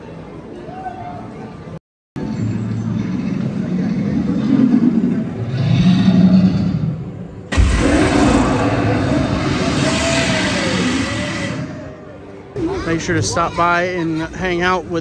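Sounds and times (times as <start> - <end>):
deep rumble: 2.2 - 12.3.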